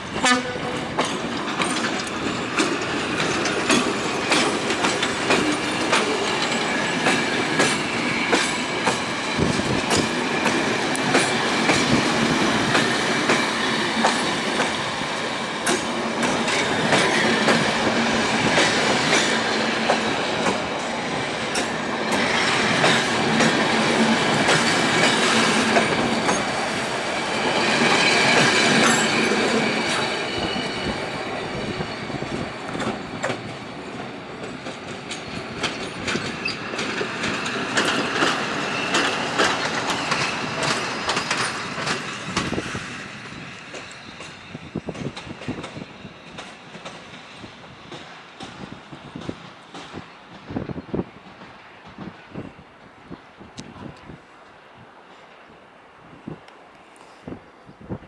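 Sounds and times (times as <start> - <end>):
train wheels clicking over joints: 0.2 - 53.7
high wheel squeal: 27.9 - 32.4.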